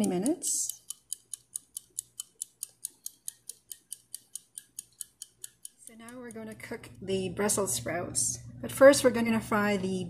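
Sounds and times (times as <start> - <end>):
mechanical kitchen timer ticking: 0.0 - 10.0.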